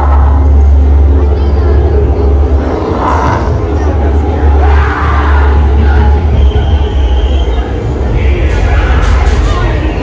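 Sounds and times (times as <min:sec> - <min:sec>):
deep rumble: 0:00.0 - 0:10.0.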